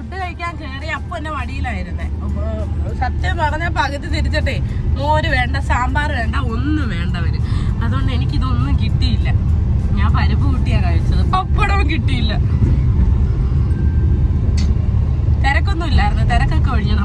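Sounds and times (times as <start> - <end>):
woman talking: 0.0 - 12.5, 15.4 - 17.0
car interior rumble: 0.0 - 17.0.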